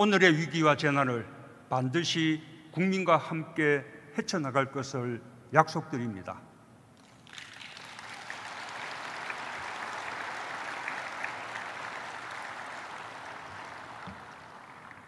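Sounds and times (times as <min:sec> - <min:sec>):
audience applauding: 0:07.0 - 0:15.0.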